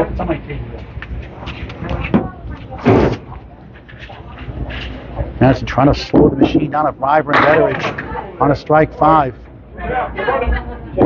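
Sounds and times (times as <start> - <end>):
people talking: 0.0 - 11.0
steady low hum: 0.0 - 11.0.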